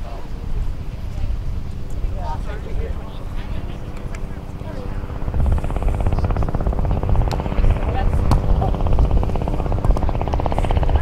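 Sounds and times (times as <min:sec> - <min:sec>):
helicopter rotor thudding: 0:02.9 - 0:11.0.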